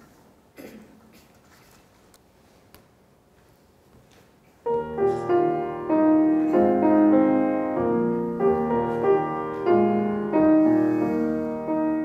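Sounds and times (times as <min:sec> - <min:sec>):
grand piano playing: 0:04.6 - 0:12.0.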